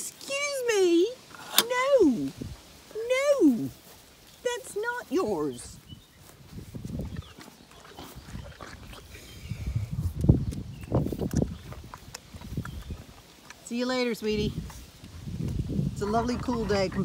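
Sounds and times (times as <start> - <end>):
pony chewing and snuffling: 3.6 - 17.0.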